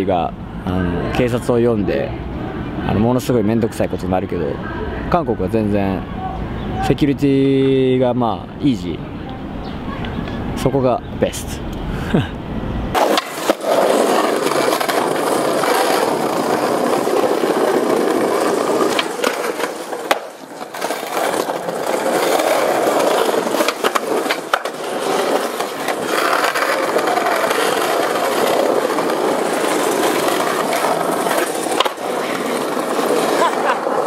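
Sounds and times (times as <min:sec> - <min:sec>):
skateboard wheels rolling on pavement: 0:12.5 - 0:34.0
skateboard clacks: 0:12.9 - 0:34.0.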